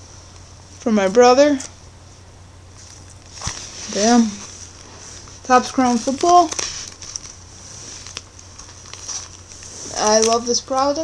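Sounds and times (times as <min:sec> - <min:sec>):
low steady hum: 0:00.0 - 0:11.0
shrink wrap rustling: 0:02.7 - 0:11.0.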